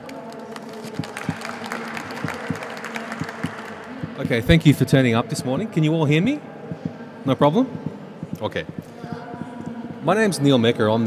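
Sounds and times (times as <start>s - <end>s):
audience applause: 0.0s - 4.9s.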